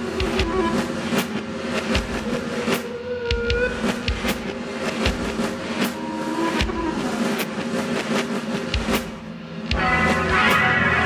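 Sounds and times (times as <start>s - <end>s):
drum beats: 0.0s - 11.0s
jazz-rock band playing: 9.7s - 11.0s
sustained electric guitar: 9.7s - 11.0s.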